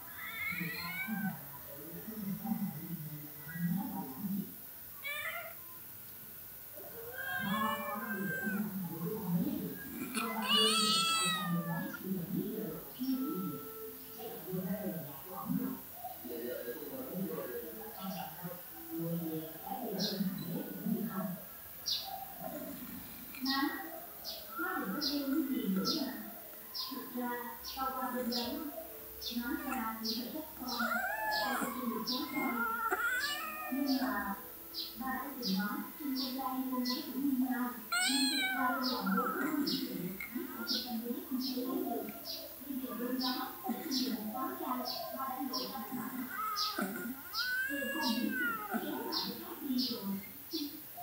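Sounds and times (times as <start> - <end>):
cat meowing: 0.0 - 1.4, 5.0 - 5.6, 6.9 - 8.7, 10.0 - 12.0, 30.7 - 34.1, 37.9 - 39.5, 46.3 - 49.3.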